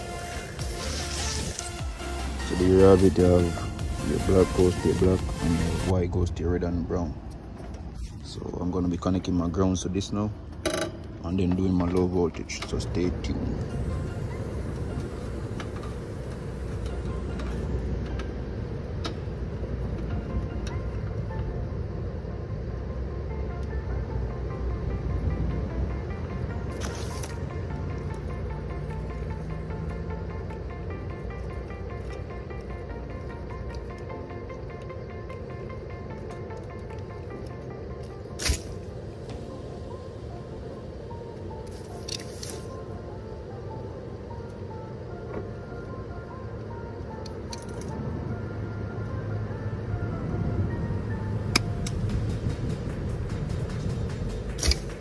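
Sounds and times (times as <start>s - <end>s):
background music: 0.0s - 55.0s
sharp snap: 38.4s - 38.8s, 53.7s - 55.0s
low rumble: 49.2s - 55.0s.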